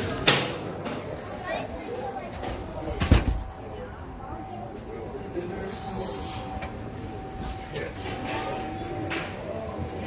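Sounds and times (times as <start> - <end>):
faint voices murmuring: 0.0 - 10.0.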